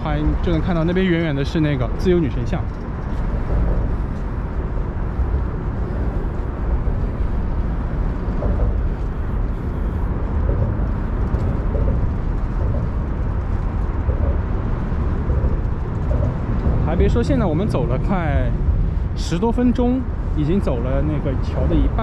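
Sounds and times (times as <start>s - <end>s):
traffic rumble: 0.0s - 22.0s
wind buffeting microphone: 0.0s - 22.0s.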